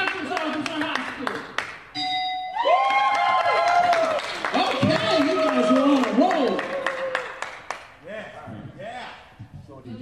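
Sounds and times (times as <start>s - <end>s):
people clapping: 0.0s - 1.9s, 2.6s - 8.0s
electronic ding: 2.0s - 2.6s
cheering and shouting: 2.6s - 7.4s.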